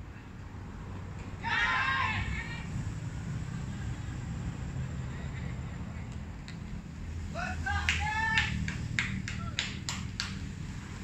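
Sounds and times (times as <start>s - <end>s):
high-pitched shout: 1.4s - 2.7s, 7.4s - 8.6s
sharp hand claps: 7.8s - 10.5s.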